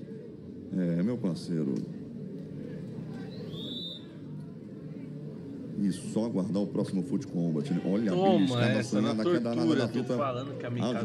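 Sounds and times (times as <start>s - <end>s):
short high whistle: 3.5s - 4.1s.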